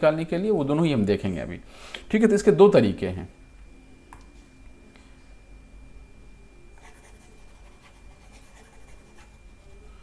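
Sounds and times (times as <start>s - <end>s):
thin steady high tone: 2.2s - 10.0s
stylus scratching on tablet screen: 6.8s - 9.9s.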